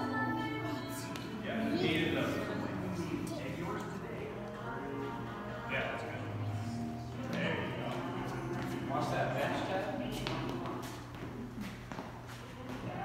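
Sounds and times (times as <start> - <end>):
background music: 0.0 - 13.0
voices: 0.0 - 13.0
sneakers shuffling on rubber floor: 7.3 - 13.0.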